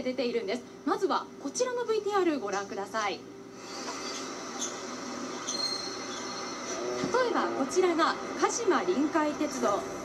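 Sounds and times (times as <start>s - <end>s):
diesel railcar running: 4.0s - 10.0s
thin high squeal: 5.4s - 6.8s.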